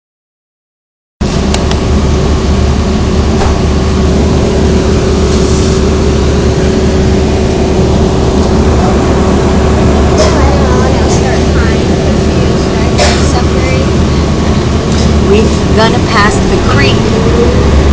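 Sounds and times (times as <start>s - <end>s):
bus engine rumble: 1.2s - 17.9s.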